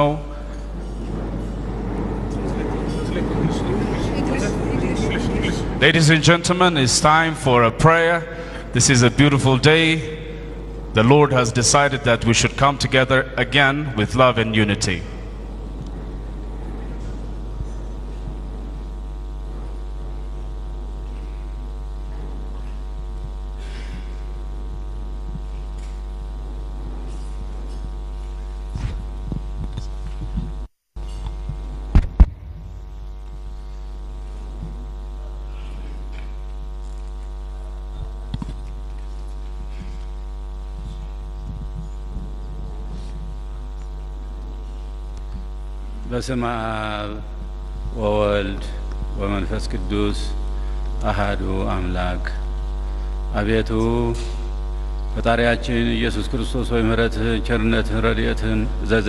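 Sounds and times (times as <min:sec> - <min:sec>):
electrical mains hum: 0:00.0 - 0:59.0.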